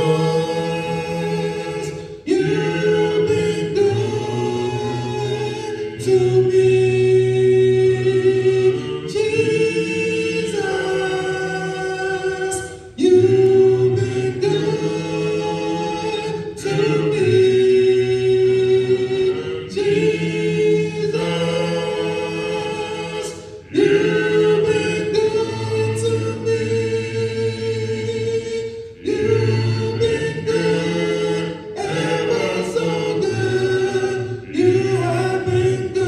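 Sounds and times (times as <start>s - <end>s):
congregation singing a hymn: 0.0s - 36.0s.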